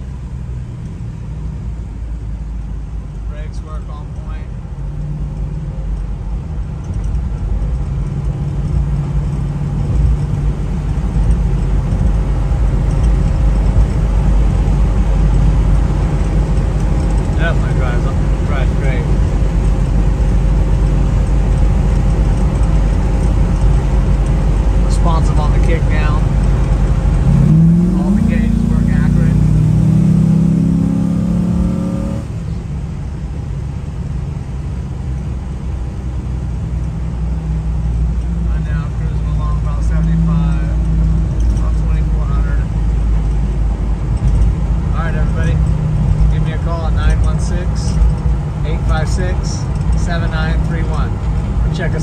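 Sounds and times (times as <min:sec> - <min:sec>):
car engine and road drone: 0:00.0 - 0:52.0.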